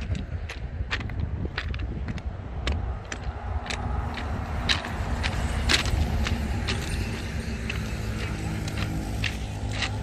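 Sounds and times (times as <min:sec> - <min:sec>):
sharp irregular clicks: 0:00.0 - 0:10.0
truck passing with low rumble: 0:00.0 - 0:10.0.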